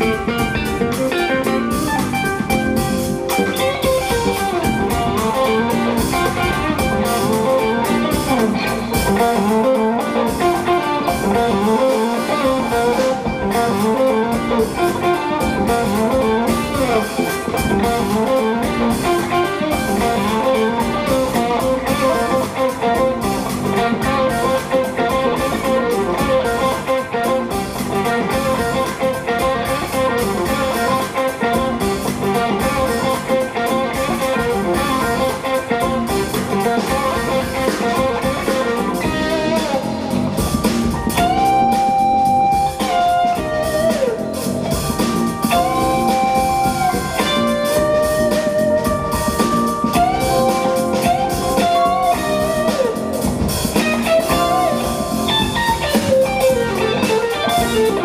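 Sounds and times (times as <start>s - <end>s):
drum kit with busy cymbals: 0.0s - 58.0s
electric bass: 0.0s - 58.0s
electric guitar: 0.0s - 58.0s
piano: 0.0s - 58.0s.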